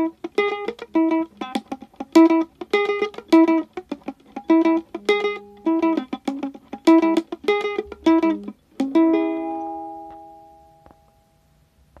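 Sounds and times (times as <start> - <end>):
ukulele strummed chords: 0.0 - 11.6.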